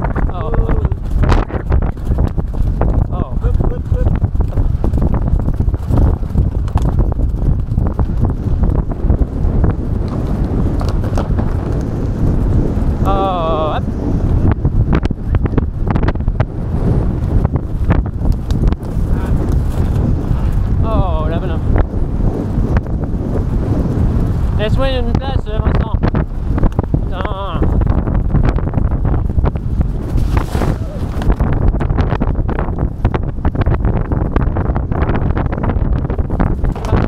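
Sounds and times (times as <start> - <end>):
horses galloping on turf: 0.0 - 37.0
wind noise on microphone: 0.0 - 37.0.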